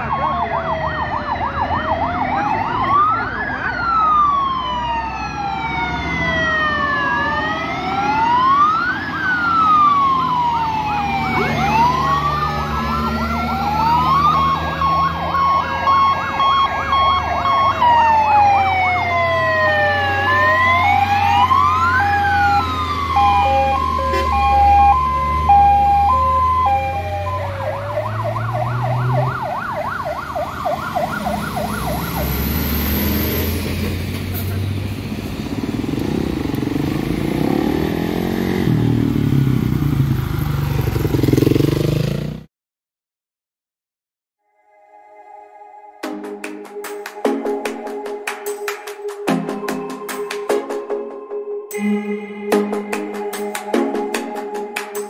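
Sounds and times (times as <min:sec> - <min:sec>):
fire engine sirens: 0:00.0 - 0:40.5, 0:44.6 - 0:55.0
truck engines rumbling: 0:00.0 - 0:42.4
motorcycle passing: 0:07.1 - 0:17.8, 0:19.3 - 0:42.5.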